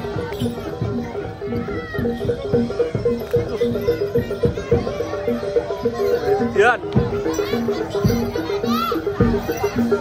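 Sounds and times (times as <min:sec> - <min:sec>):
drum strokes: 0:00.0 - 0:10.0
repeating metallic percussion notes: 0:00.0 - 0:10.0.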